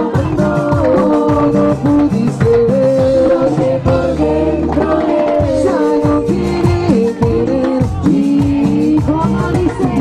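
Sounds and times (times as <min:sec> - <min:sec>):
amplified singing: 0:00.0 - 0:10.0
live band playing dance music: 0:00.0 - 0:10.0.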